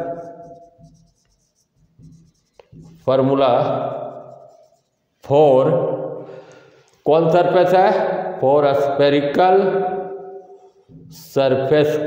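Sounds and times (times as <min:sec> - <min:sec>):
marker scratching on whiteboard: 0:00.0 - 0:05.3.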